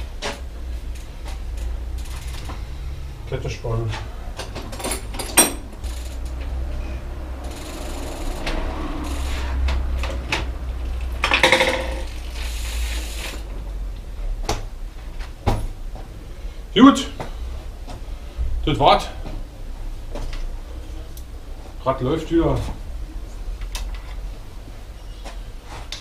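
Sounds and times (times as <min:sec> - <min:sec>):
steady low hum: 0:00.0 - 0:26.0
bicycle chain running over sprockets: 0:00.9 - 0:02.6, 0:04.8 - 0:06.6, 0:07.3 - 0:13.5
freewheel ratcheting: 0:00.9 - 0:02.8, 0:04.7 - 0:06.6, 0:07.3 - 0:13.5.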